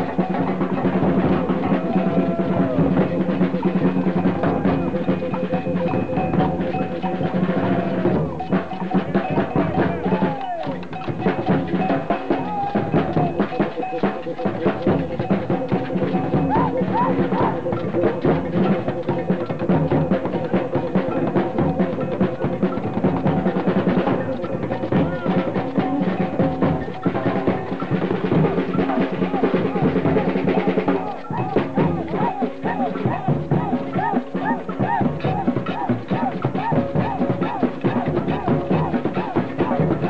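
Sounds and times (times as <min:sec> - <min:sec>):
crowd voices: 0:00.0 - 0:40.0
drums beaten with sticks: 0:00.0 - 0:40.0.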